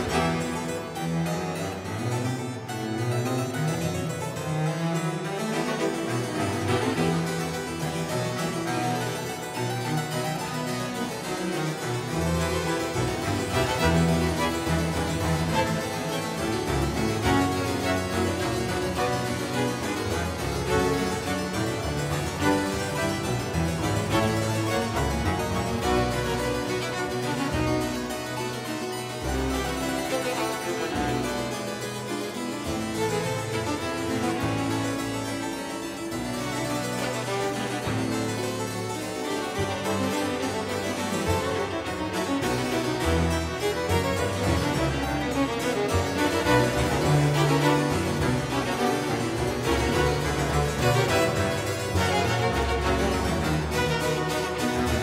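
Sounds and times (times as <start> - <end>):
harpsichords playing baroque music: 0.0 - 55.0.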